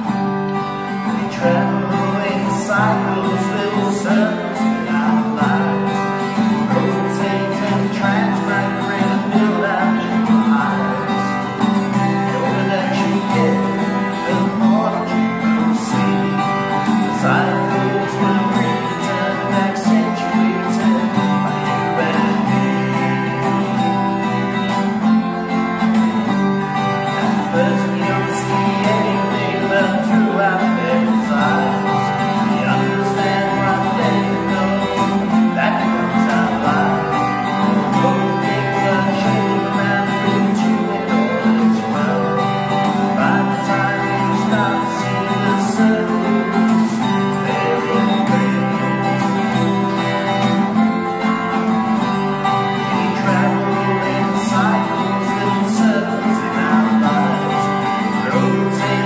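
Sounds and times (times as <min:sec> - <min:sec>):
acoustic guitar chords: 0:00.0 - 0:59.0.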